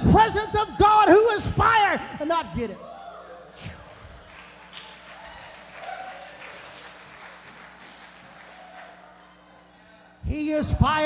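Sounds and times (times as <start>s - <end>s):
scattered clapping: 3.8s - 9.4s.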